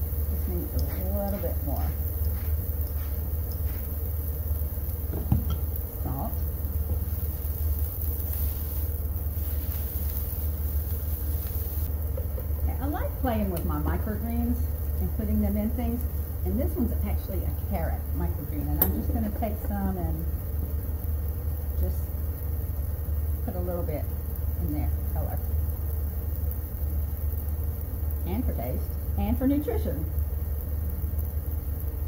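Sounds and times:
induction cooktop hum: 0.0 - 32.0.

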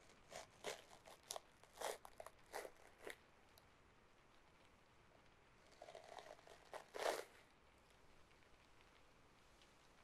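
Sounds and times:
soft crinkling and crunching: 0.0 - 10.0.

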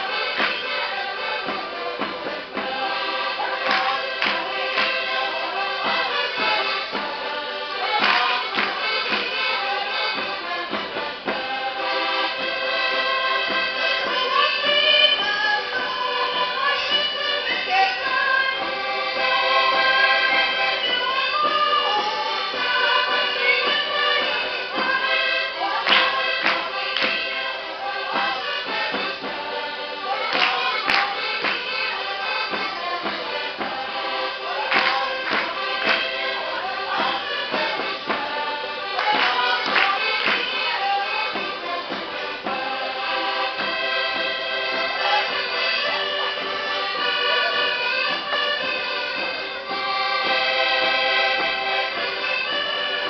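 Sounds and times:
people singing: 0.0 - 49.3
accordion: 0.0 - 53.0
string instruments: 0.0 - 53.0
sharp clapping: 0.3 - 0.8, 3.6 - 5.0, 8.0 - 9.4, 25.8 - 27.3, 30.3 - 31.8, 34.7 - 36.1, 39.0 - 41.5.

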